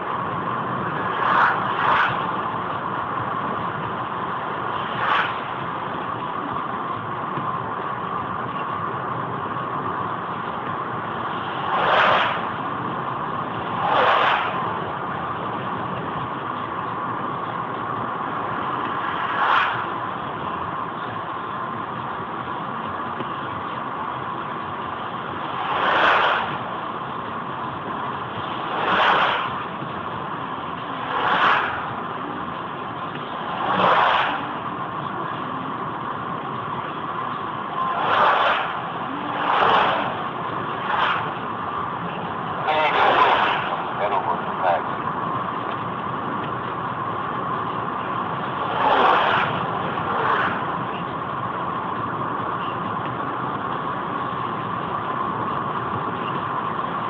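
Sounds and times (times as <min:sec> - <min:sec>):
car road and engine noise: 0:00.0 - 0:57.0
oncoming vehicles whooshing past: 0:11.2 - 0:12.6, 0:13.4 - 0:15.0, 0:28.3 - 0:30.1, 0:31.0 - 0:34.7, 0:37.7 - 0:44.9.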